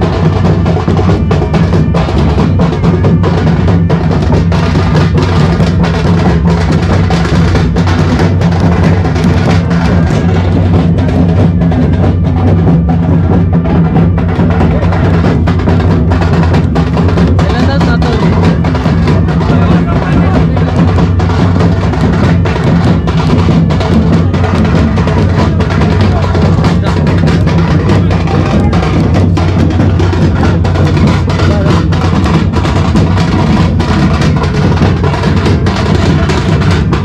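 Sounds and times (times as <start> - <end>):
crowd voices: 0.0 - 37.0
drums beaten in steady rhythm: 0.0 - 37.0.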